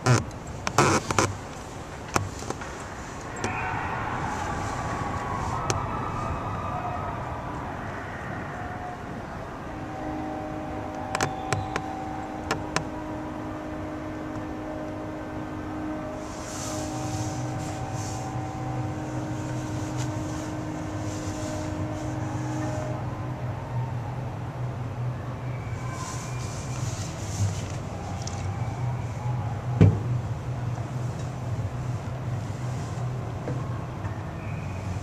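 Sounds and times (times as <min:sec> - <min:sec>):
steady hum: 0:00.0 - 0:35.0.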